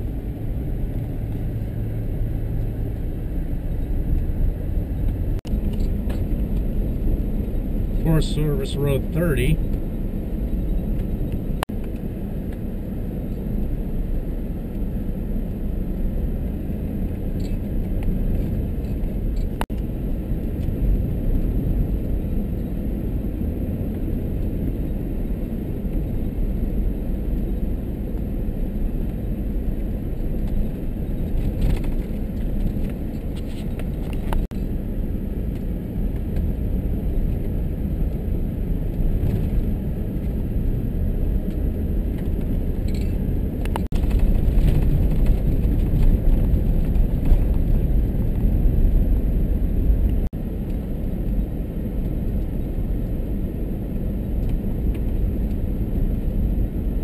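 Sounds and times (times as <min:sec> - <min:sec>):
engine and tyre rumble on gravel: 0:00.0 - 0:57.0.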